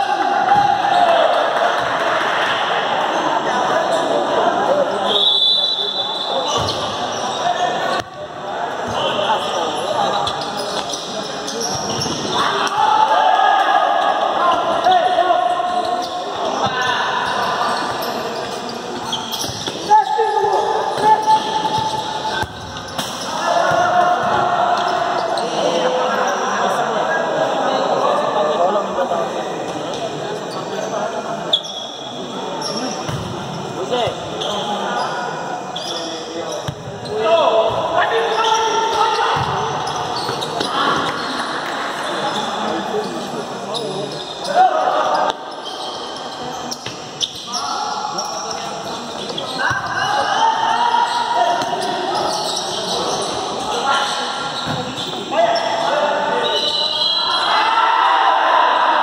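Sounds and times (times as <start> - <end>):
people shouting in a hall: 0.0 - 6.6, 12.3 - 17.8, 19.8 - 22.4, 23.2 - 28.8, 44.4 - 45.6, 49.5 - 54.5, 55.2 - 59.0.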